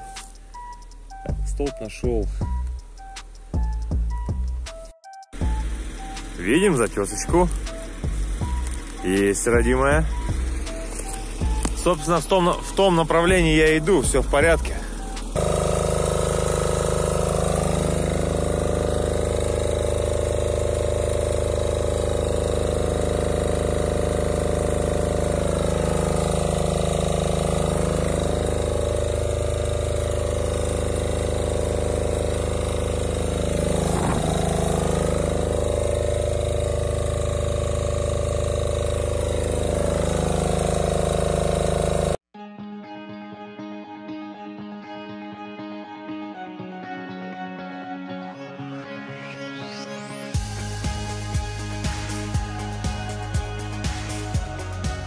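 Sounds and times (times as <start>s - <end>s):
high whir: 2.4s - 42.2s, 49.6s - 55.0s
diesel engine running: 5.4s - 42.2s, 50.4s - 55.0s.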